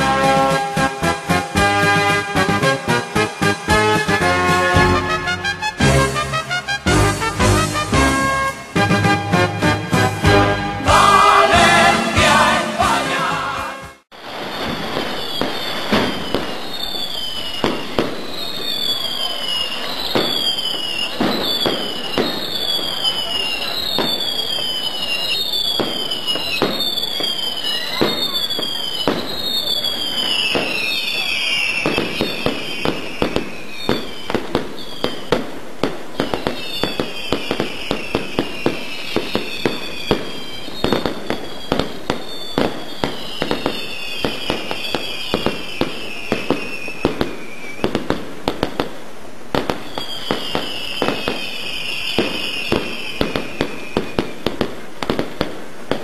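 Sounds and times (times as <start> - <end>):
firecracker bangs crackling: 0.0 - 13.0, 13.9 - 56.0
whistling fireworks: 0.0 - 56.0.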